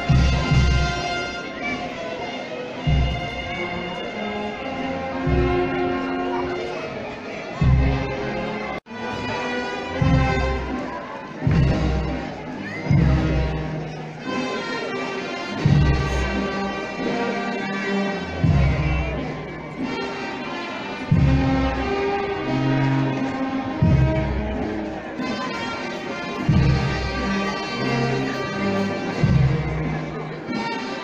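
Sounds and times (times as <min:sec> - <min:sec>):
brass band playing a slow march: 0:00.0 - 0:31.0.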